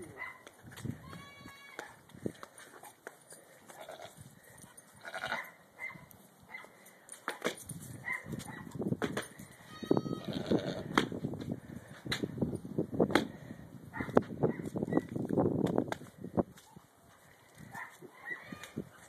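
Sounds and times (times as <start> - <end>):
goats bleating: 1.0 - 1.8, 5.0 - 5.4, 9.6 - 10.9.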